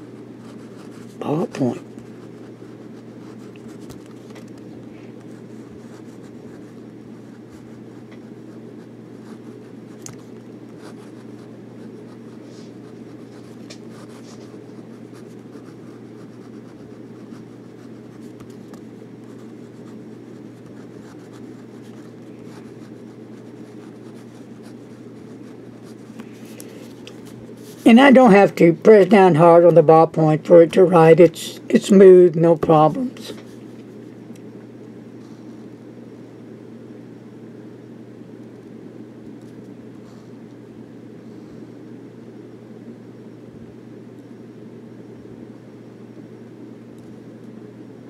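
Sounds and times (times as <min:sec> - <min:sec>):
pen scratching on paper: 0:00.0 - 0:04.4, 0:05.3 - 0:28.4
steady low hum: 0:00.0 - 0:48.0.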